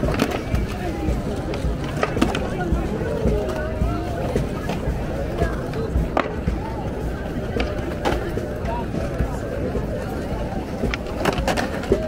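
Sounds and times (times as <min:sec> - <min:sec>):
crowd voices: 0:00.0 - 0:12.0
skateboard clacks: 0:00.0 - 0:12.0
skateboard wheels rolling on stone: 0:00.0 - 0:12.0.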